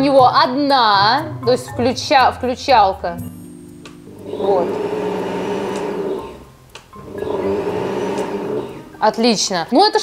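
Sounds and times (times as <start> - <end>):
blender motor running: 4.1 - 9.0.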